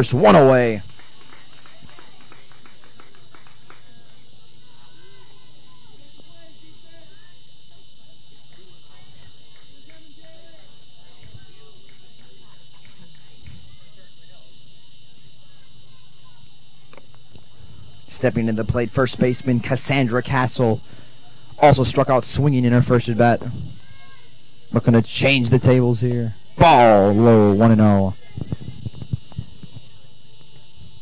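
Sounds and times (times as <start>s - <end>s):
high-pitched hum: 0.0s - 31.0s.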